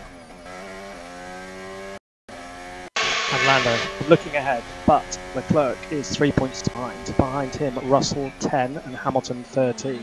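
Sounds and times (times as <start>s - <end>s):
racing car engine at speed: 0.0s - 10.0s.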